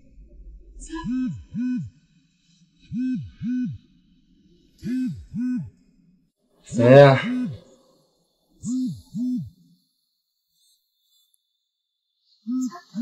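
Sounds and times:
phone buzzing on vibrate: 6.8 - 7.5.

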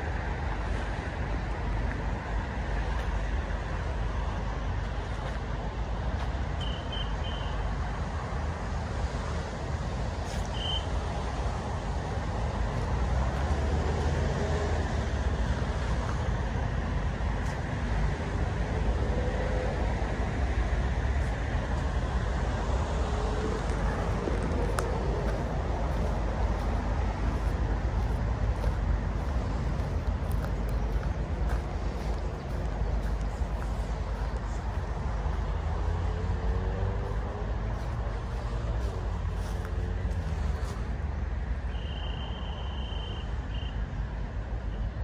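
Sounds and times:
road traffic rumble: 0.0 - 45.0.

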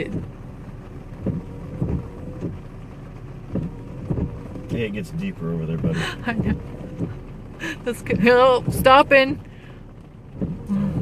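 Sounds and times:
soft low thumps: 0.0 - 11.0
truck engine idling: 0.0 - 11.0.

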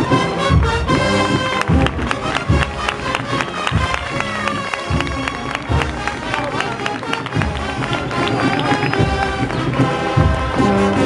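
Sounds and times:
bass drum beating: 0.0 - 11.0
sustained brass chords: 0.0 - 11.0.

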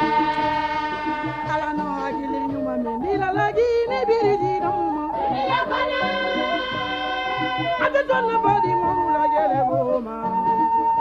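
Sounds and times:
rhythmic instrumental accompaniment: 0.0 - 11.0
woman singing: 1.0 - 10.7.

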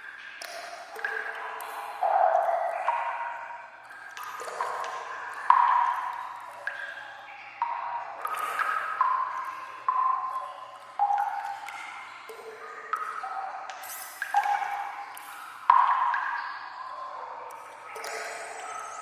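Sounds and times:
water drops plinking in tunnel: 0.0 - 19.0.

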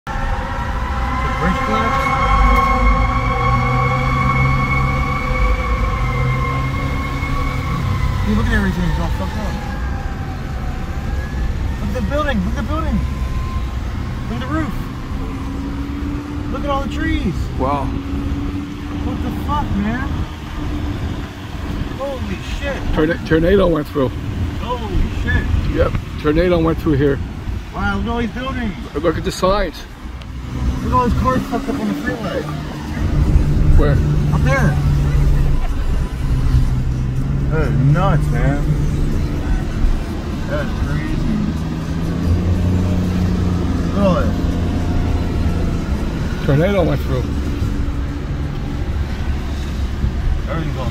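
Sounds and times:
car road rumble: 0.0 - 50.9.

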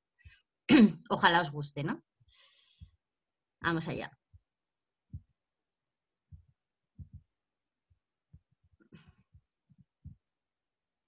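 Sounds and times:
faint low thumps: 6.3 - 7.3.

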